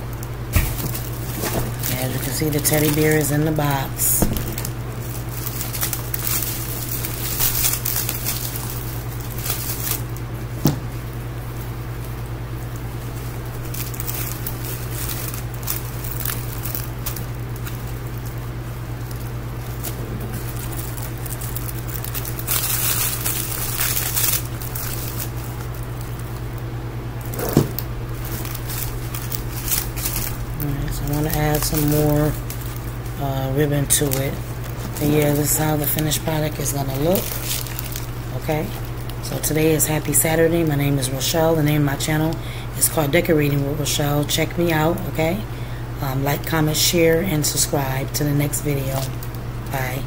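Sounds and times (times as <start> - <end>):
plastic wrap crinkling: 0.0 - 50.0
steady low hum: 0.0 - 50.0.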